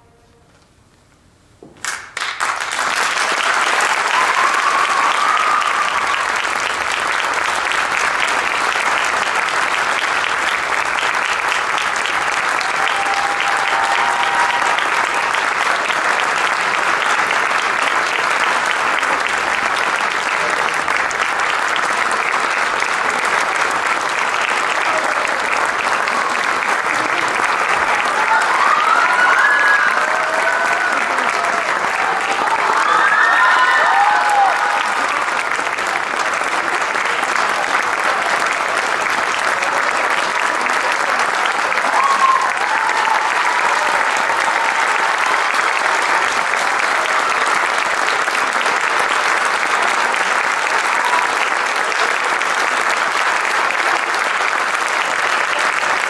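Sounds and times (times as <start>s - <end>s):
audience applauding: 1.7s - 56.0s.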